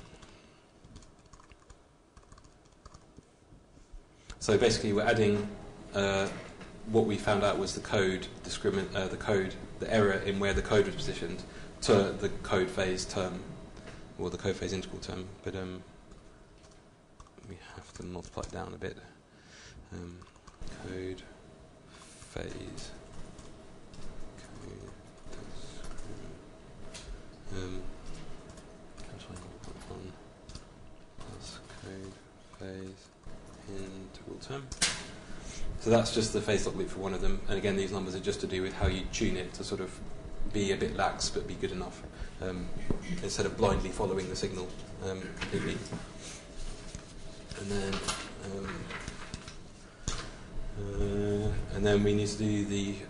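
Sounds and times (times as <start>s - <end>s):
laptop keyboard keystrokes: 0.1s - 3.3s.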